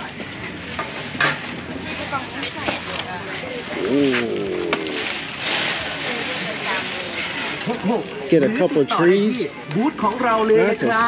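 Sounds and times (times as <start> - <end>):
people talking: 1.7 - 11.0.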